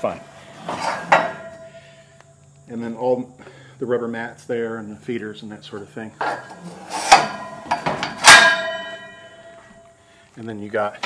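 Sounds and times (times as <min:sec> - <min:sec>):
metal door hardware clanking: 0:06.2 - 0:09.4.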